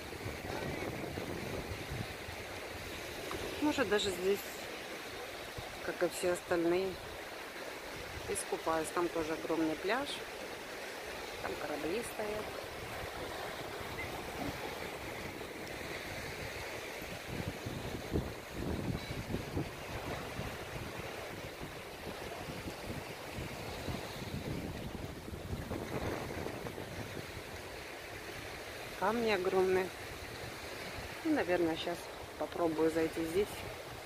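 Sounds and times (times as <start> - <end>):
wind gusting on microphone: 0.0 - 4.4, 11.3 - 34.0
surf washing onto rocky shore: 0.0 - 34.0.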